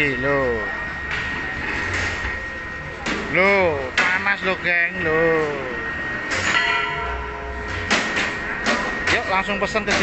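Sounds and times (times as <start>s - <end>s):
low machinery hum: 0.0s - 10.0s
machinery high whine: 0.0s - 10.0s.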